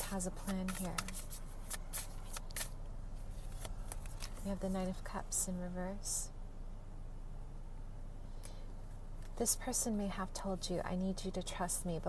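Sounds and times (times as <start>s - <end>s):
cards being shuffled: 0.0s - 4.8s.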